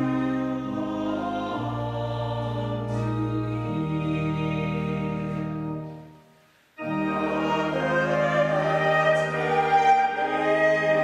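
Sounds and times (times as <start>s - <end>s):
sacred choral music: 0.0s - 11.0s.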